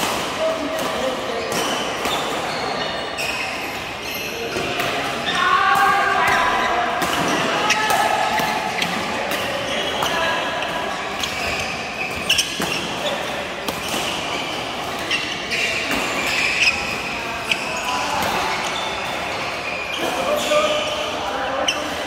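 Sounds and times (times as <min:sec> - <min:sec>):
players' voices: 0:00.0 - 0:22.0
shoes squeaking on court floor: 0:00.0 - 0:22.0.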